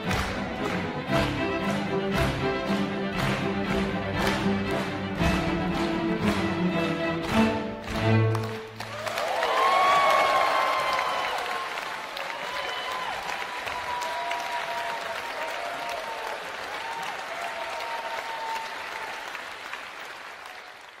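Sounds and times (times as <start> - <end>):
audience applauding: 0.0 - 21.0.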